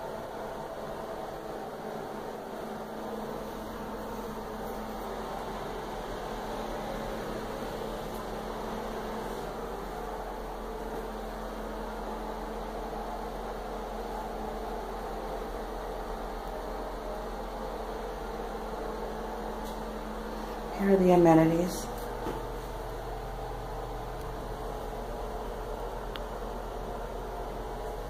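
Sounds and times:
steady whooshing room noise: 0.0s - 28.0s.

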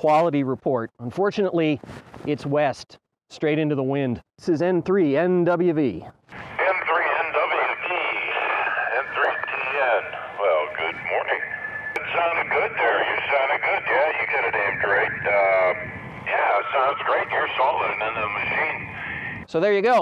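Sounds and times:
person speaking over radio speaker: 6.3s - 20.0s.

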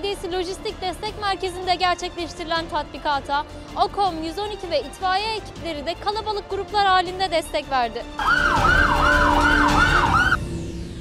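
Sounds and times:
fire engine siren yelping: 8.2s - 10.4s.

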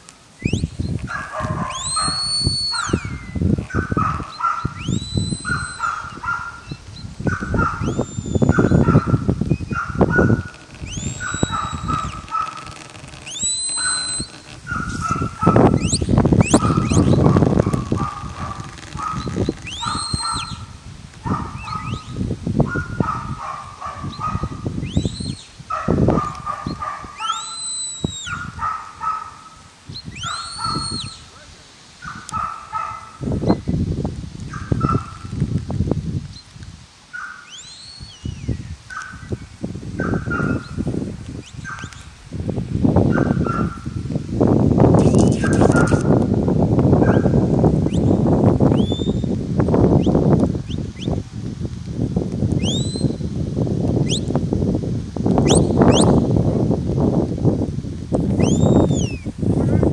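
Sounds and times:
shepherd's whistle commands: 0.4s - 0.9s, 1.7s - 3.4s, 4.7s - 6.1s, 7.6s - 9.8s, 10.8s - 12.2s, 13.3s - 14.4s, 19.6s - 20.6s, 24.8s - 25.5s, 27.2s - 28.4s, 29.9s - 31.2s, 48.8s - 49.3s, 52.6s - 53.2s, 55.5s - 56.2s, 58.4s - 59.2s.

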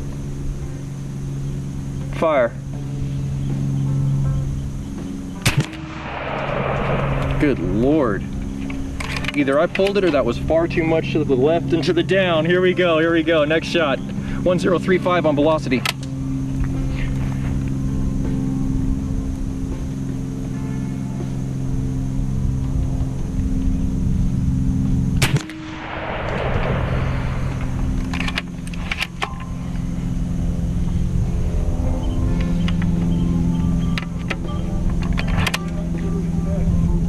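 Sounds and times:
background music with low tones: 0.0s - 37.0s
air rifle shot: 5.4s - 9.4s, 25.2s - 29.7s
rushing noise: 5.5s - 9.4s, 25.4s - 32.0s.

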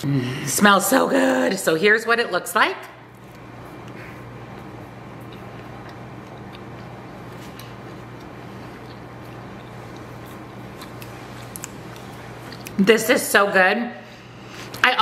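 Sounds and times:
steady low hum: 0.0s - 15.0s
quiet chewing clicks: 3.2s - 12.8s.

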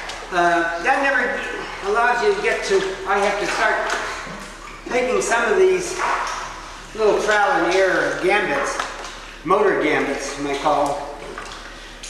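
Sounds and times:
man's voice: 0.3s - 4.1s, 4.9s - 6.2s, 6.9s - 11.2s.

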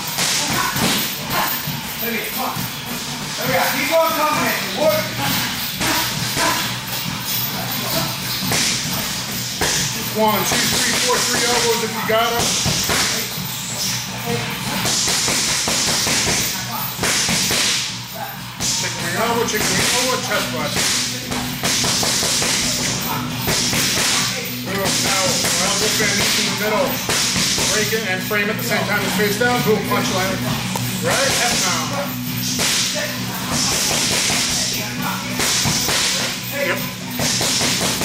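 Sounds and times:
steady hiss of gym noise: 0.0s - 38.0s.

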